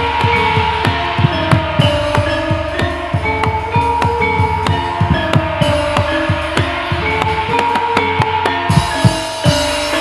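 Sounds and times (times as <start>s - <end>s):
drum strokes: 0.0s - 10.0s
metallophone notes ringing: 0.0s - 10.0s.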